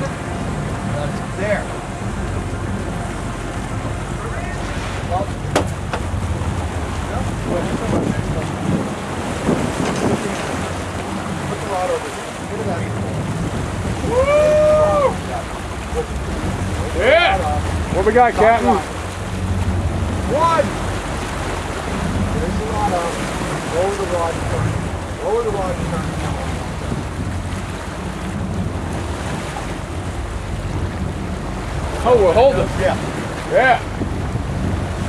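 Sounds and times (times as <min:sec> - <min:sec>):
boat engine: 0:00.0 - 0:35.0
low steady rumble: 0:00.0 - 0:35.0
sea: 0:00.0 - 0:35.0
wind noise: 0:00.0 - 0:35.0
person yelling excitedly: 0:14.0 - 0:15.2.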